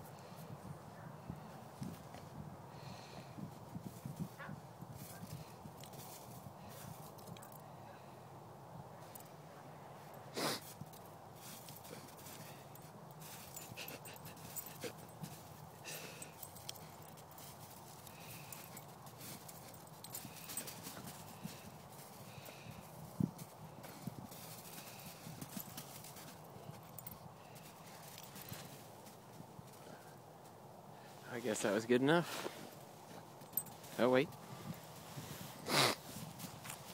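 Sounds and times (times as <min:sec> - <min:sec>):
dog digging in crusted snow: 0:11.4 - 0:29.2, 0:33.7 - 0:36.9.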